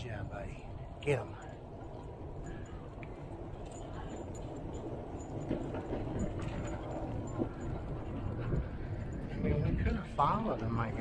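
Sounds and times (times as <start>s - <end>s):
light metallic jingling: 0.0s - 9.7s
wind rumble: 0.0s - 11.0s
bicycle tyres rolling on pavement: 3.3s - 11.0s.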